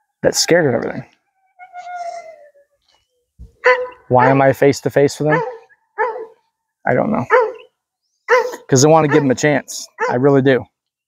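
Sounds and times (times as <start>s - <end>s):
dog whimpering: 1.3s - 2.8s, 5.3s - 6.4s, 7.3s - 7.7s, 8.3s - 9.3s
dog whining: 1.3s - 4.4s, 5.3s - 6.4s, 7.3s - 7.7s, 8.3s - 9.3s.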